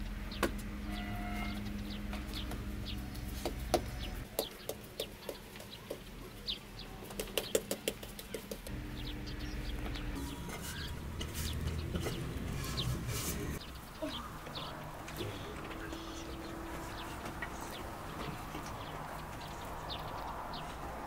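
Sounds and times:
small birds chirping: 0.0 - 21.0
low steady hum: 8.7 - 20.4
hens clucking: 8.7 - 21.0.

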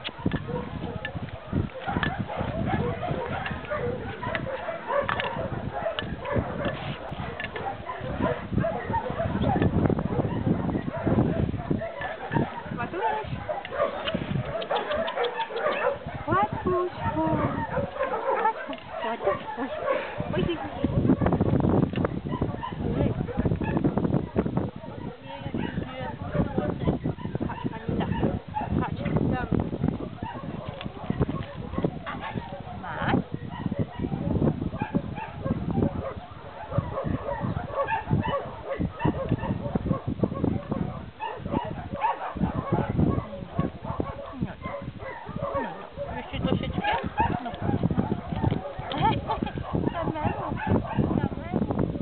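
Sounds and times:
dog barking and whimpering: 0.1 - 21.4, 22.2 - 28.8, 30.0 - 52.0
people talking: 12.7 - 13.4, 16.3 - 20.9, 25.1 - 29.6, 32.0 - 33.2, 45.5 - 47.8, 48.9 - 51.7.

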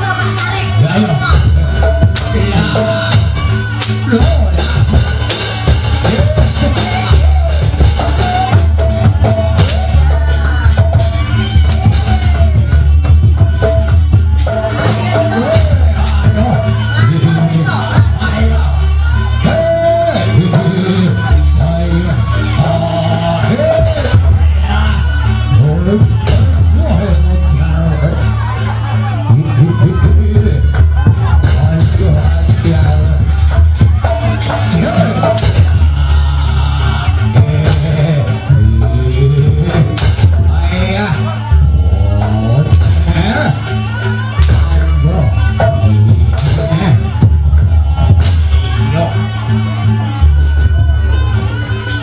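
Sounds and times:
drums and percussion: 0.0 - 52.0.

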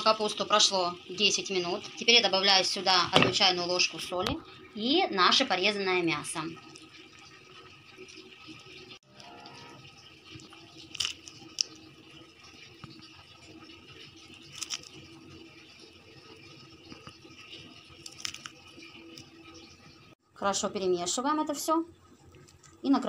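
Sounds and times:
pot of broth simmering: 0.0 - 20.3.

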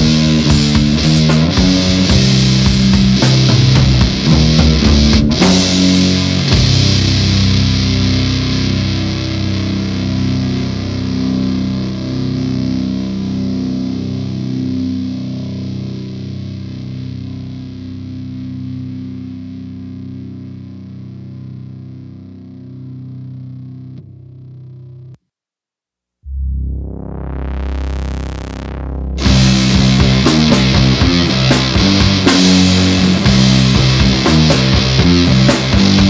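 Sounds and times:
distorted electric guitar chord ringing: 0.0 - 25.2, 26.3 - 36.0.

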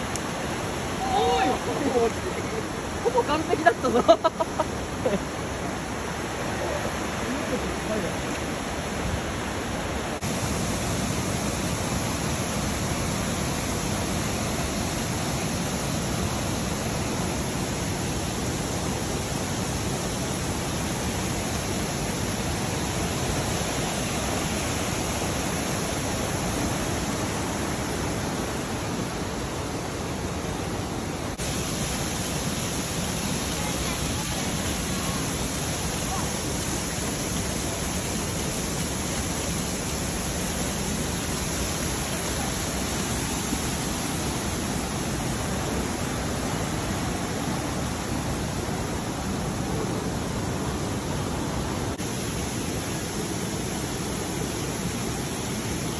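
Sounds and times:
waterfall and stream rapids rushing: 0.0 - 55.9.

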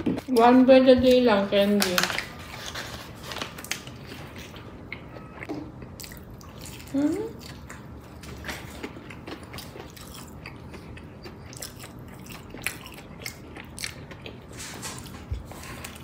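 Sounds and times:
chewing with mouth clicks and crunches: 2.1 - 16.0.

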